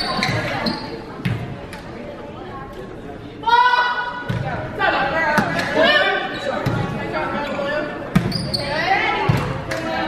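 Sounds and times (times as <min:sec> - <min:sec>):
voices calling out in gymnasium: 0:00.0 - 0:10.0.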